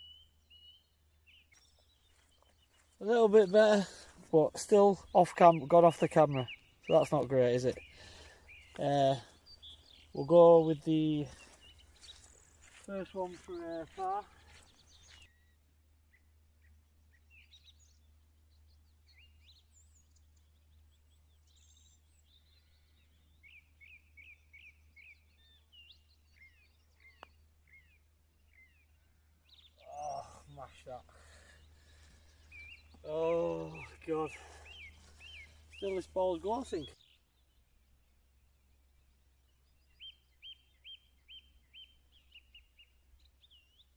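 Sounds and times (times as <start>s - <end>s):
birds chirping: 0.0s - 43.9s
man's voice: 12.8s - 14.3s, 33.0s - 34.4s.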